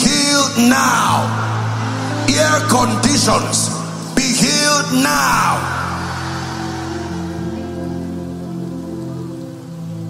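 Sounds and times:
rain: 0.0 - 10.0
soft ambient music: 0.0 - 10.0.

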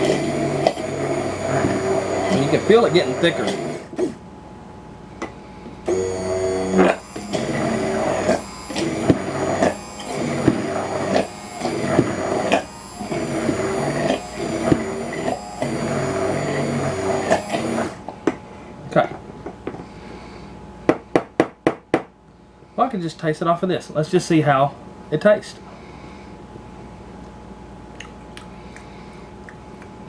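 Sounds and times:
immersion blender pulsing: 0.0 - 4.2, 5.9 - 18.0.

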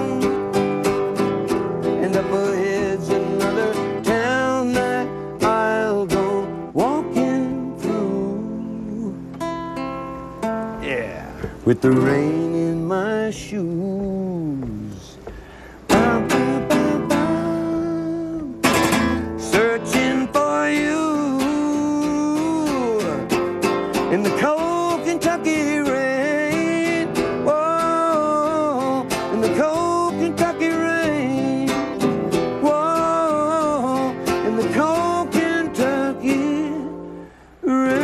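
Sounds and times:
man singing country ballad: 0.0 - 9.4, 10.8 - 38.0
strummed acoustic guitar: 0.0 - 38.0.

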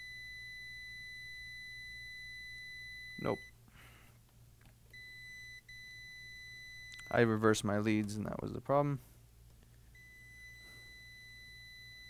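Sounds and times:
multimeter continuity beep: 0.0 - 3.6, 4.9 - 7.3, 9.9 - 12.0.

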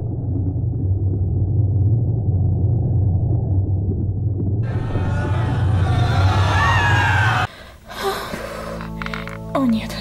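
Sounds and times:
deep underwater rumble: 0.0 - 7.5.

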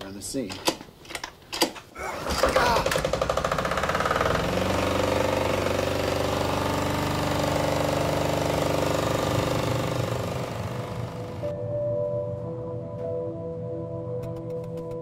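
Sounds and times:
diesel engine clattering: 2.9 - 11.5
soft sustained music: 10.2 - 15.0.

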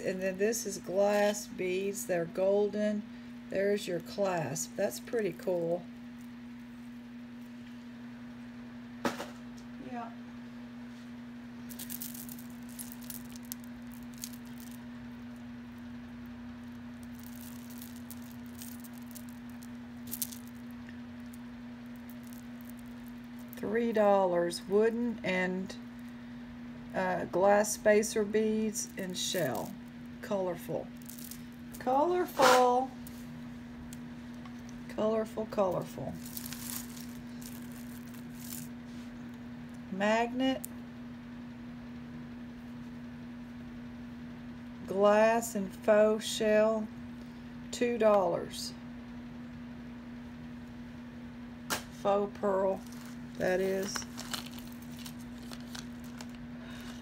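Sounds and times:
steady low hum: 0.0 - 57.0
beaded necklaces clicking: 11.7 - 14.9, 16.6 - 23.6, 31.0 - 31.9, 36.2 - 38.7.

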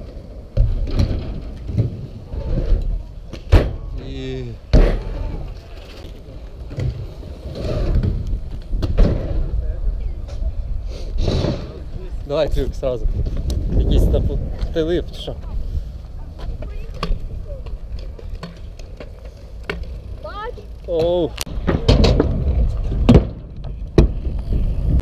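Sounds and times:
wheels rolling on asphalt: 0.0 - 25.0.

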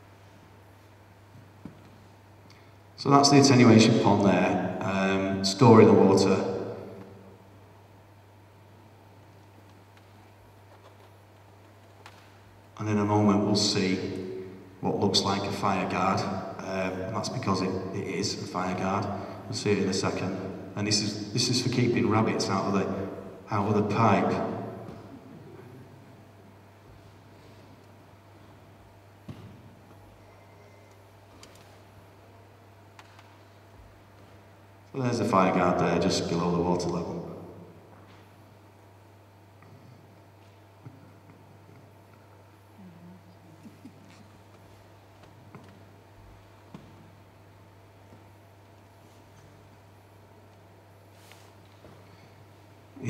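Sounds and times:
steady low hum: 0.0 - 53.0.

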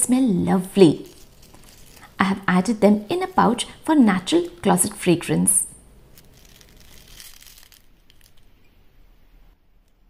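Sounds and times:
fabric pouch crinkling rustle: 0.8 - 2.2, 6.1 - 8.6
small crackles: 0.8 - 2.2, 6.1 - 8.8.

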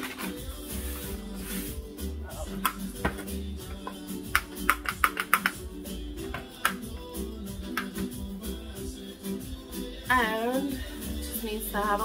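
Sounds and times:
background music: 0.0 - 12.0
jar and lid clicking: 3.8 - 5.6.

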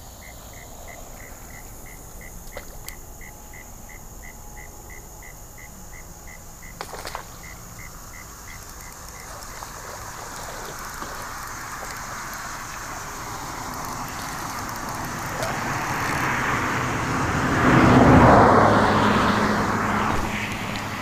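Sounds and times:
cricket chirping: 0.0 - 21.0
sharp clicks: 8.4 - 12.9, 13.6 - 16.2.

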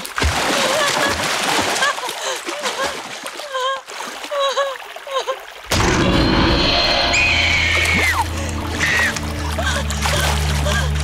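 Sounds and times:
woman crying and gasping: 0.6 - 5.5, 9.4 - 11.0
film score with deep drone: 5.7 - 11.0
high scream-like tone: 5.8 - 9.0
stream water rushing: 6.9 - 11.0.

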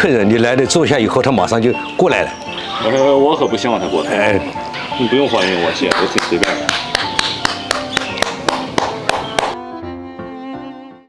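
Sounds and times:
background music: 0.0 - 11.0
man clapping hands: 5.8 - 9.6.

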